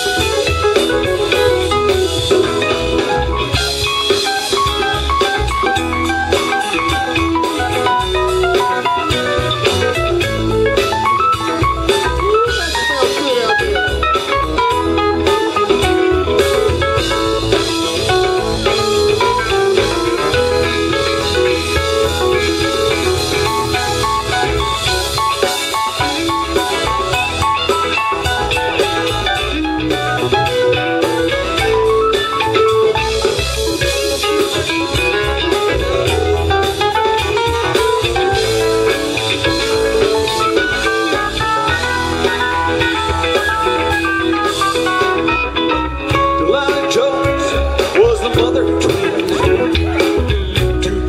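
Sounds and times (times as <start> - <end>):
bass guitar: 0.0 - 51.0
drum kit: 0.0 - 51.0
lead guitar melodic lines: 0.0 - 51.0.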